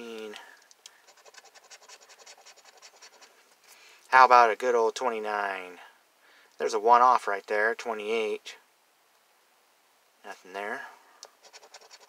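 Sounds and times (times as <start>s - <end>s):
coin scratching lottery ticket: 1.0s - 3.4s, 11.4s - 12.0s.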